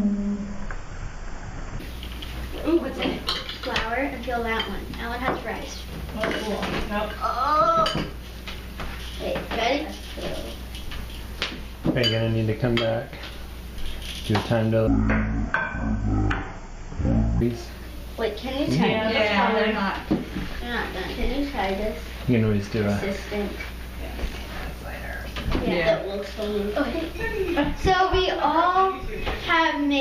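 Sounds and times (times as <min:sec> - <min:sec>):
low steady hum: 0:00.0 - 0:30.0
voices talking: 0:14.3 - 0:30.0.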